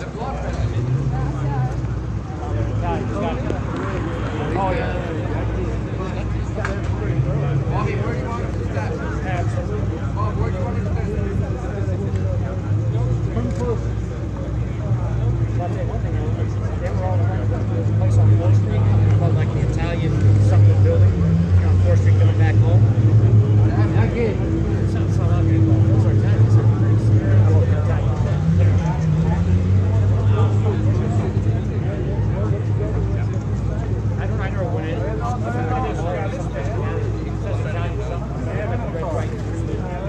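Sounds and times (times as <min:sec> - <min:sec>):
indistinct voices talking: 0:00.0 - 0:40.0
low engine hum: 0:00.0 - 0:40.0.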